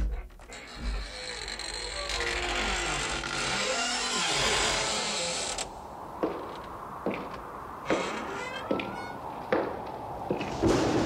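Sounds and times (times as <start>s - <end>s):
creaking grinding sound: 0.0s - 5.7s, 7.2s - 9.2s.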